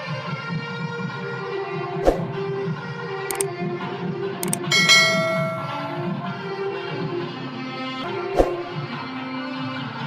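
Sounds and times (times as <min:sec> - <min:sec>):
mouse clicks: 0:04.4 - 0:04.7
notification bell ringing: 0:04.4 - 0:06.2.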